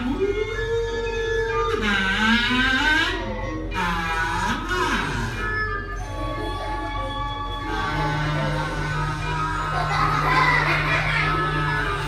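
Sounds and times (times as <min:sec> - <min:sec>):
background music: 0:00.0 - 0:12.0
kazoo sliding pitches: 0:01.7 - 0:06.0, 0:07.6 - 0:12.0.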